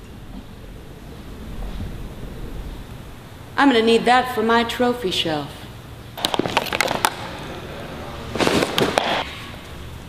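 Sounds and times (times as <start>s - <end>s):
crackling popping burst: 6.2s - 9.5s.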